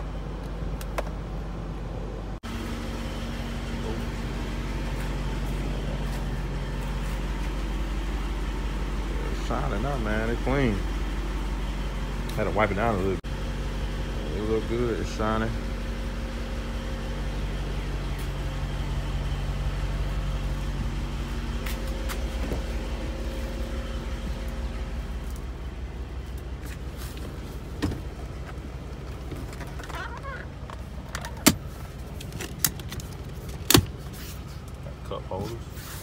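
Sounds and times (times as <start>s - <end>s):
car idling with low hum: 0.0s - 36.0s.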